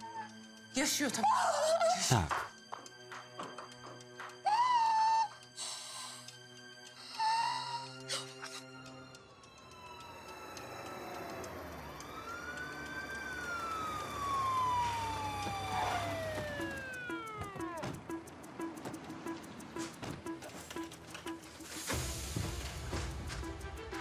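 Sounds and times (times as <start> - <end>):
emergency vehicle siren wailing: 9.2 - 18.0.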